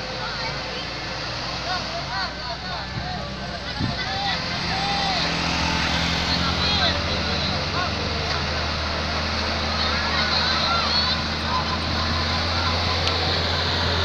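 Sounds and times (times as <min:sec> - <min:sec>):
onlookers calling out: 0:00.0 - 0:14.0
truck engine labouring: 0:00.0 - 0:14.0.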